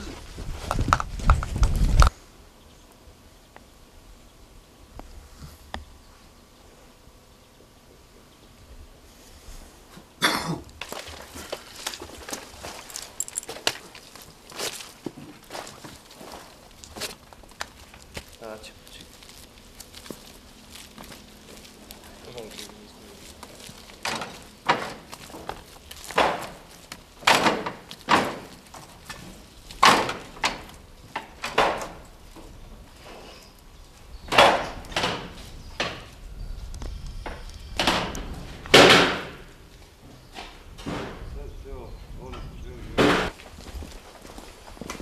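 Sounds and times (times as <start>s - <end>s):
footsteps crunching through brush: 10.7s - 31.4s, 43.3s - 45.0s.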